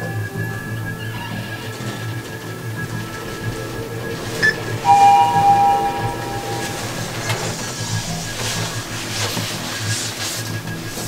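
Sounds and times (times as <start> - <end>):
elevator two-tone chime: 2.8 - 8.2.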